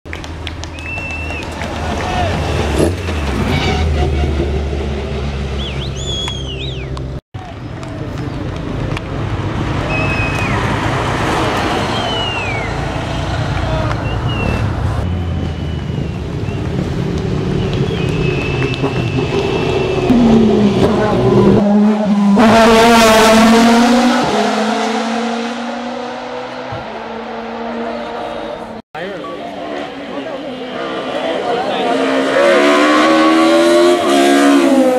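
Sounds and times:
car passing by: 9.4 - 15.6
racing car engines at high revs: 14.3 - 28.8, 29.5 - 34.9.

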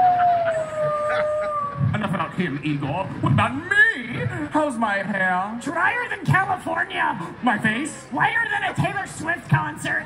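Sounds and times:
wolf-style howl: 0.0 - 1.9.

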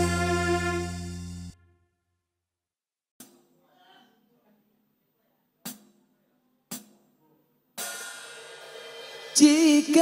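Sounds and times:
held chord: 0.0 - 1.7
ringing cymbal: 7.8 - 9.6.

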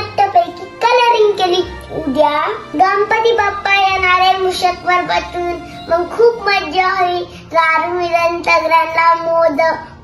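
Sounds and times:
girl singing: 0.0 - 9.9.

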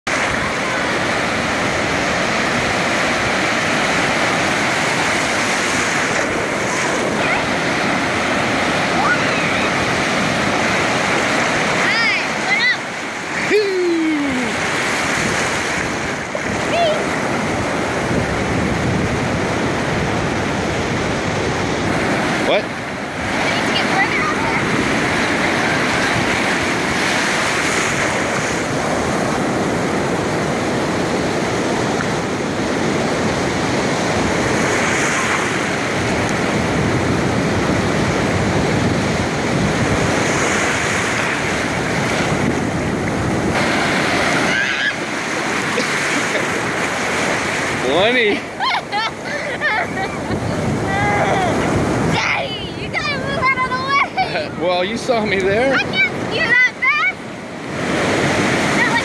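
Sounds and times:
surf breaking and churning: 0.0 - 59.0.

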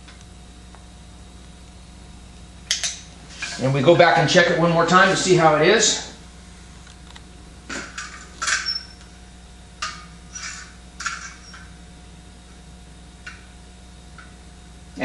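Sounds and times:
faint steady hum: 0.0 - 15.0.

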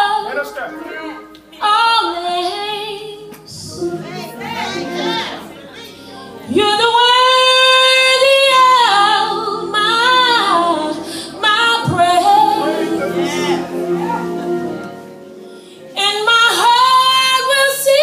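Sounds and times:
woman singing gospel song: 0.0 - 15.0, 15.8 - 18.0.

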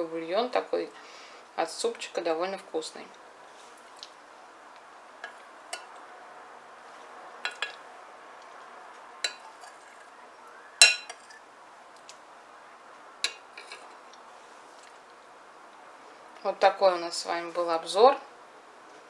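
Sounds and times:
metal spoon clinking on ceramic plate: 9.2 - 9.8, 10.8 - 11.4.

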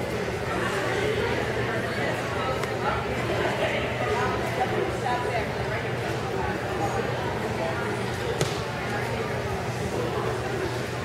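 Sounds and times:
people chattering in hall: 0.0 - 11.0.

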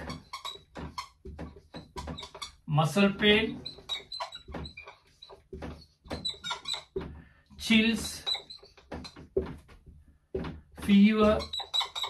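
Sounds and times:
marker squeaking on whiteboard: 0.0 - 12.0.

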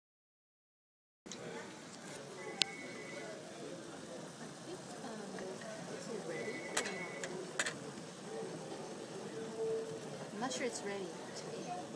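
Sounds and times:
restaurant chatter: 1.3 - 11.9
tableware clinking: 6.4 - 7.9.

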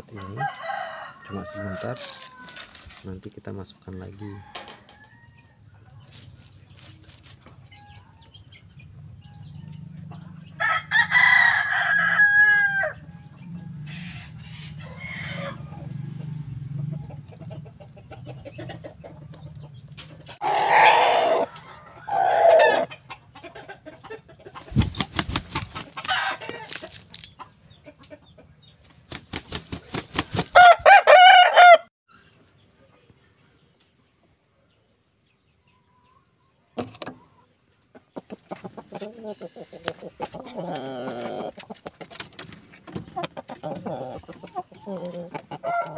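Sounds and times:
roosters crowing: 0.0 - 3.0, 4.0 - 5.8, 9.2 - 24.2, 25.0 - 27.2, 30.0 - 31.9, 38.9 - 41.7, 43.1 - 45.9.

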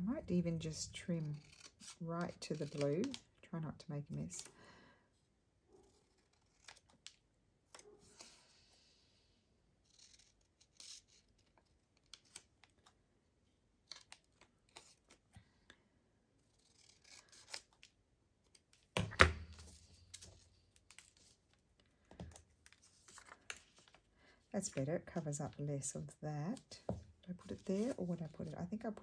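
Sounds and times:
scissors snipping paper: 0.6 - 3.3, 16.4 - 19.0.

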